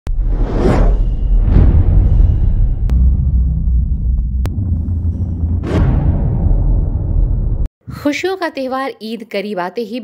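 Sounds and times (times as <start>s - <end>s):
deep bass drone: 1.0s - 7.7s.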